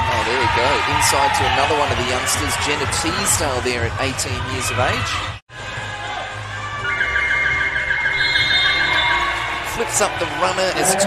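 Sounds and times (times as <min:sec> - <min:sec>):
warbling whistle-like tone: 0:06.8 - 0:09.5.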